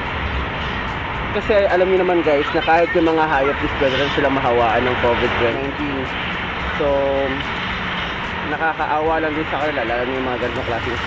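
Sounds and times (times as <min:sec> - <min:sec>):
street background noise: 0:00.0 - 0:11.0
man speaking: 0:01.4 - 0:06.1, 0:06.8 - 0:07.5, 0:08.5 - 0:11.0.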